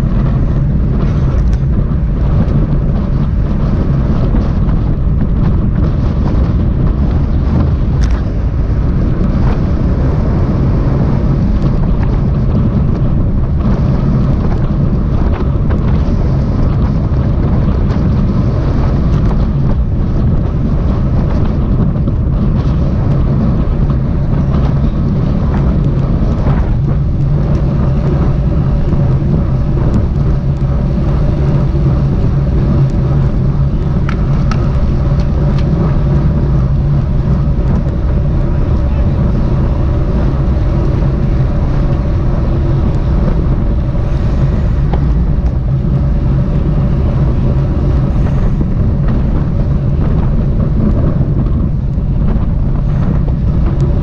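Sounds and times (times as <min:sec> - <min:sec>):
low rumble: 0:00.0 - 0:54.0
wind rushing on microphone: 0:00.0 - 0:54.0.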